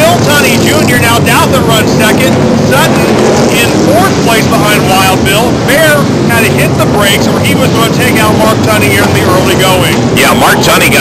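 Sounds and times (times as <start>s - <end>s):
stock car engines racing: 0.0s - 11.0s.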